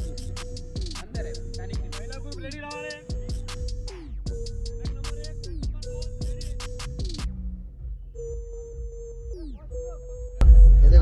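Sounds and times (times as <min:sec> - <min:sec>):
low rumble: 0:10.4 - 0:11.0.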